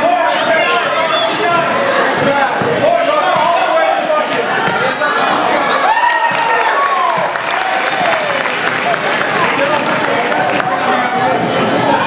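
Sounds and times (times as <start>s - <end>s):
voices of players and spectators: 0.0s - 12.0s.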